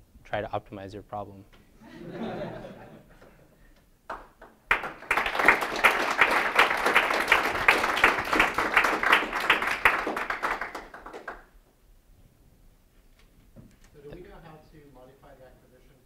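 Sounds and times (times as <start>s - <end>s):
audience applauding: 4.1s - 11.6s.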